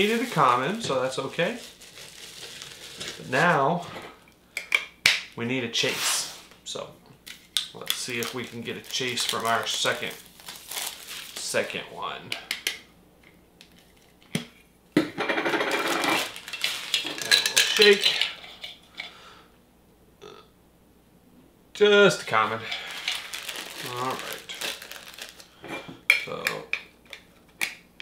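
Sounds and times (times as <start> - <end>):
person speaking: 0.0 - 1.8, 3.2 - 4.0, 7.8 - 10.3, 11.3 - 12.5, 17.0 - 18.5, 21.7 - 25.0, 26.2 - 26.7
metal can rattling and clinking: 15.6 - 18.4.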